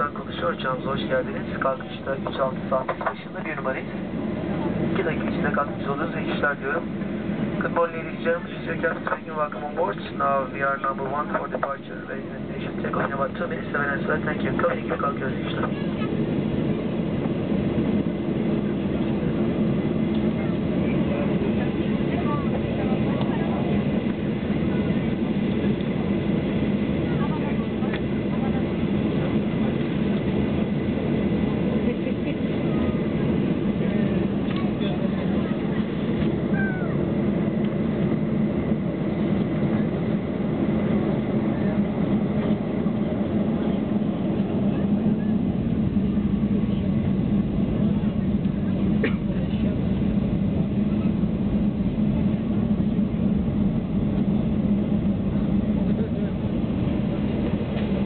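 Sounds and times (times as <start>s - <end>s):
airplane cabin hum: 0.0s - 58.0s.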